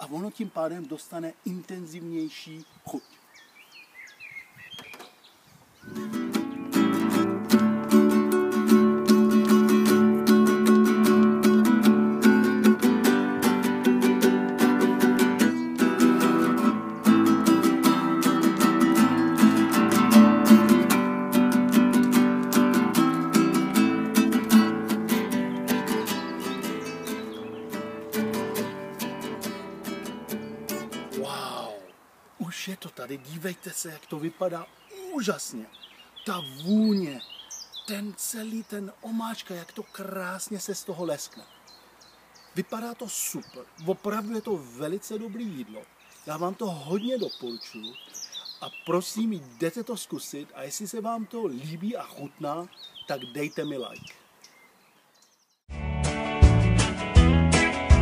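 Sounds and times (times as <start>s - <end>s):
acoustic guitar strumming chords: 5.9s - 31.3s, 55.7s - 58.0s.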